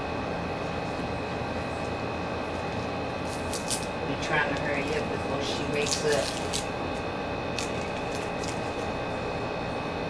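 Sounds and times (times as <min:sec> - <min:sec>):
fan hum: 0:00.0 - 0:10.0.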